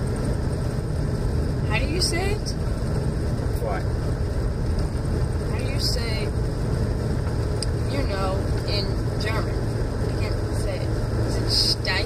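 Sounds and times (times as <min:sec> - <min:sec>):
vehicle driving on snow: 0:00.0 - 0:12.0.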